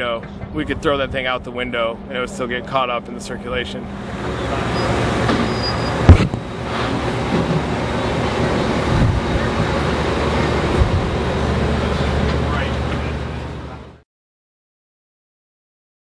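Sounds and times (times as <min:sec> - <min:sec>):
vehicle engine idling: 0:03.8 - 0:14.0.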